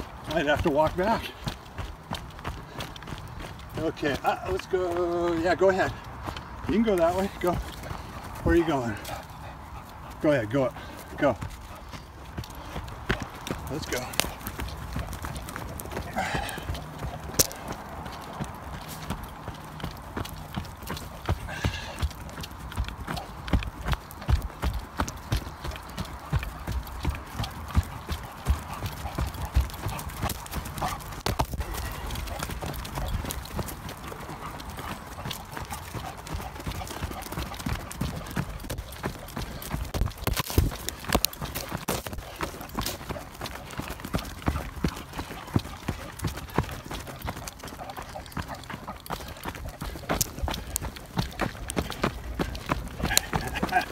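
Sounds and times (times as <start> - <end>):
running footsteps on dirt trail: 0.0 - 53.9.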